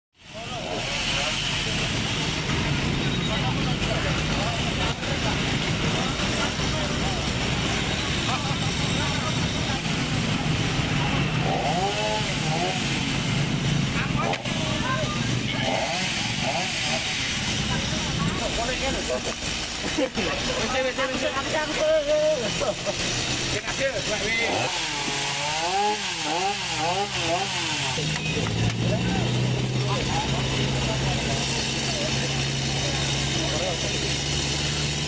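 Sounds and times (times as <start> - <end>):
engine running: 0.2 - 35.0
people talking: 0.2 - 35.0.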